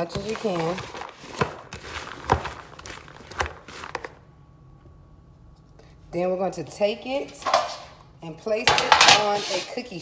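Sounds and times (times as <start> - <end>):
spatula scraping plastic bowl: 0.1 - 4.1, 8.8 - 9.8.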